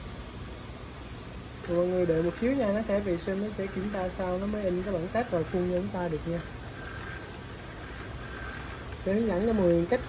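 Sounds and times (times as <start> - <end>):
faint thin whine: 0.0 - 10.0
printer humming: 0.0 - 10.0.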